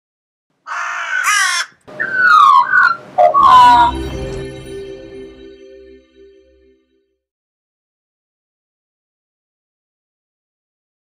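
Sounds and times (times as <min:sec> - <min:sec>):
crows cawing: 0:00.6 - 0:03.9.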